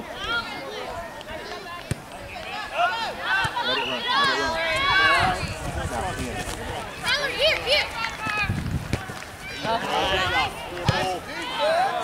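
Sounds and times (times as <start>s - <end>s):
people shouting: 7.0s - 12.0s.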